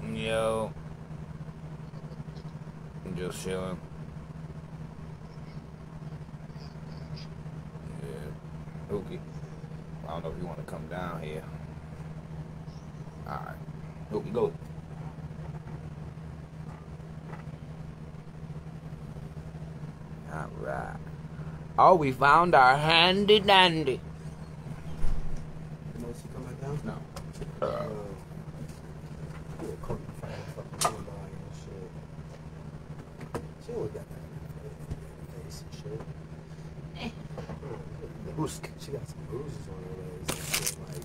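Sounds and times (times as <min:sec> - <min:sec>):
steady low hum: 0:00.0 - 0:41.0
mumbled voice: 0:27.6 - 0:28.2.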